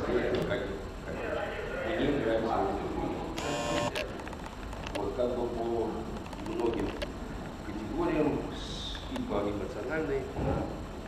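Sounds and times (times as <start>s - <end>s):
camera zoom motor whirring: 3.4s - 4.0s.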